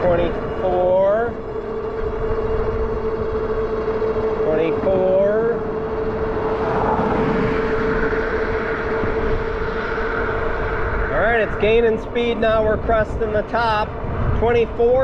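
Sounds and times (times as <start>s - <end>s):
electric motor whine: 0.0s - 14.2s
wind on microphone: 5.9s - 15.0s.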